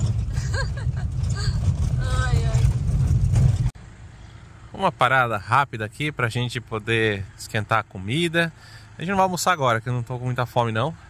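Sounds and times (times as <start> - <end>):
van driving on gravel road: 0.0 - 11.0.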